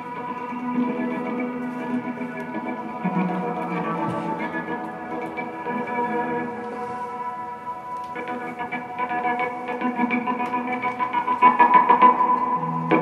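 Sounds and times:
electric guitar with effects: 0.0s - 13.0s.

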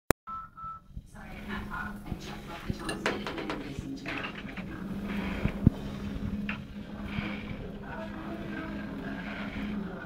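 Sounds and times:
low hum: 0.3s - 10.0s.

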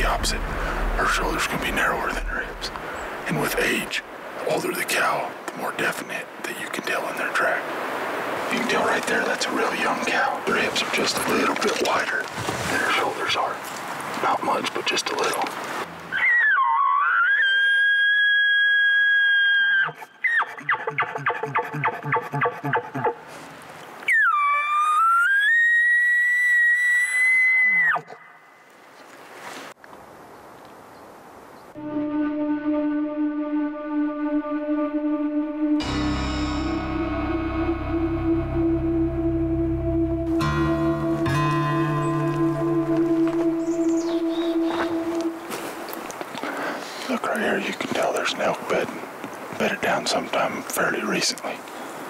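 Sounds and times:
elk bugling: 16.1s - 23.2s, 24.0s - 28.4s, 31.8s - 46.5s
elk low chuckles: 20.4s - 23.2s
background music with sustained tones: 31.8s - 45.6s.

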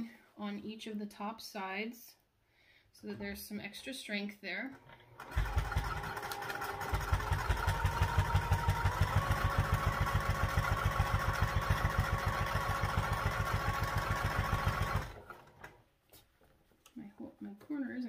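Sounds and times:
sewing machine running: 5.0s - 15.8s.

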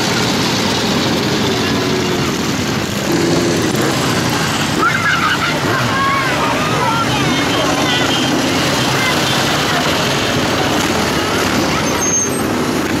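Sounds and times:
motorcycle engines running: 0.0s - 13.0s
spectators' voices: 0.0s - 13.0s.

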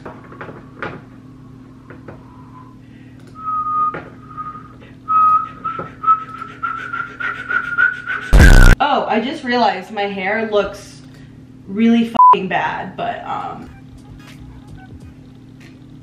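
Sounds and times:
person whistling: 3.4s - 8.8s.

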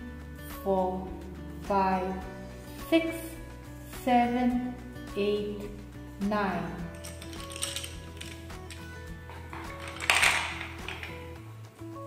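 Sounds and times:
soft background music: 0.0s - 12.0s
spindles clattering into wooden box: 6.9s - 11.4s
wooden spindles clicking and rattling: 6.9s - 11.4s.

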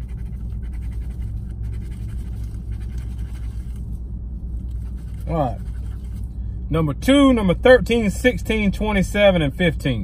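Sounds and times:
scratching lottery ticket: 0.0s - 3.8s, 4.6s - 6.3s
low rumble inside car: 0.0s - 10.0s.

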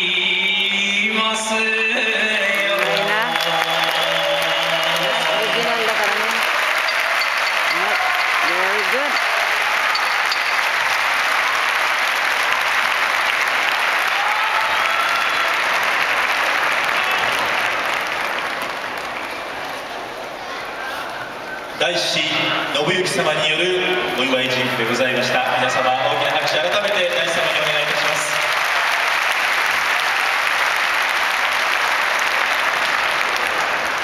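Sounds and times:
man's sung chant: 0.0s - 5.5s
audience applauding: 1.8s - 20.4s, 25.2s - 34.0s
scattered shouts: 2.8s - 10.9s.

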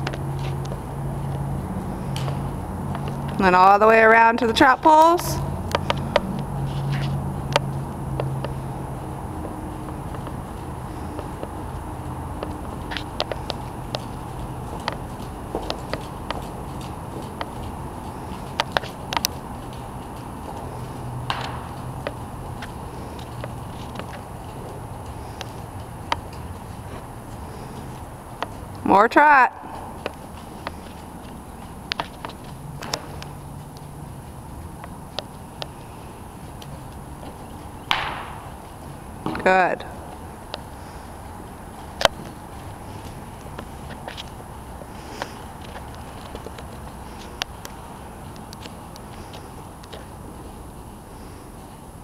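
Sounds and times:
horse hooves clicking and knocking: 0.0s - 52.0s
steady low rumble: 0.0s - 52.0s
hoof knocking wooden pole: 37.9s - 38.4s.

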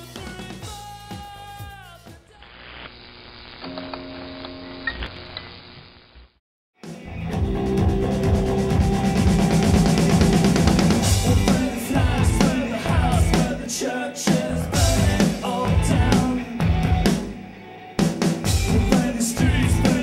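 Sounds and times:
rock band playing: 0.0s - 2.2s, 6.8s - 20.0s
song slowing to a stop: 6.8s - 20.0s.

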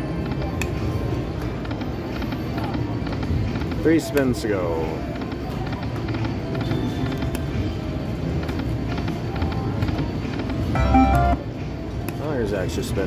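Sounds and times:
casino crowd murmur: 0.0s - 13.0s
slot machine game music: 10.7s - 11.6s.

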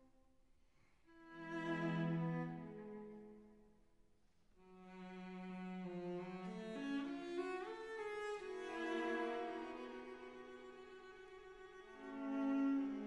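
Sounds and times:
bowed string music: 1.1s - 3.6s, 4.6s - 13.0s.

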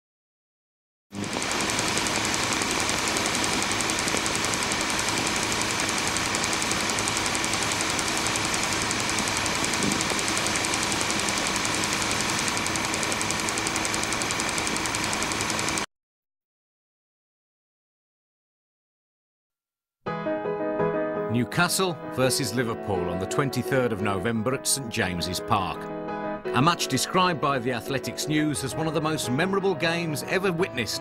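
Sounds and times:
film projector whirring and clattering: 1.2s - 15.9s.

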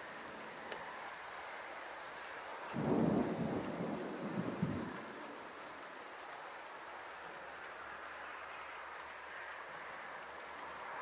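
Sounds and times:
background hiss: 0.0s - 11.0s
thunder cracks: 2.8s - 5.4s
thunder rumble: 2.8s - 5.8s.

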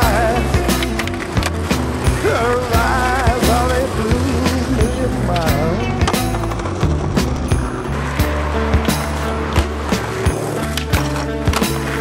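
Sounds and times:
background music: 0.0s - 12.0s
skateboard clacking: 0.0s - 12.0s
skateboard wheels rolling on pavement: 0.0s - 12.0s.

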